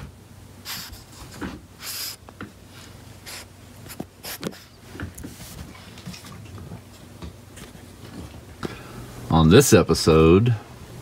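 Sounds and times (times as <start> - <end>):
dog snuffling: 0.6 - 5.9.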